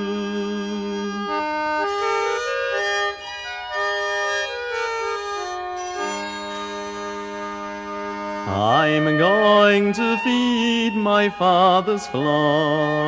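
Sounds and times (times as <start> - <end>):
squeezebox folk melody: 0.0 - 13.0.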